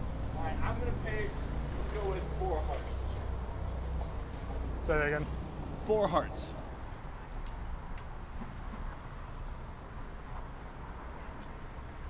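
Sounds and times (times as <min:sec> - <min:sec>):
city street background rumble: 0:00.0 - 0:12.0.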